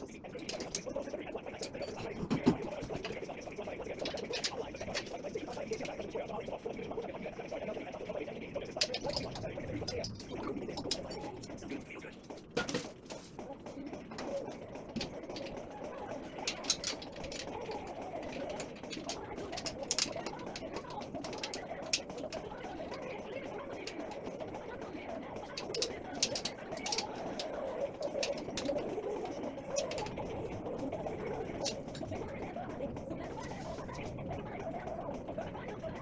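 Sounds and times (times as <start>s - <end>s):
wavering background tone: 0.0s - 36.0s
metal frame clicks and taps: 8.8s - 11.3s, 16.3s - 23.0s, 25.5s - 28.9s, 29.7s - 30.3s.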